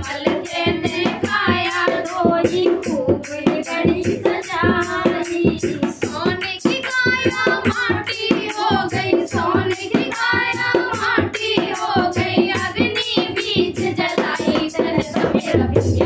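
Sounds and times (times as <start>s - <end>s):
rhythmic hand claps: 0.0s - 16.0s
women singing folk song: 0.0s - 16.0s.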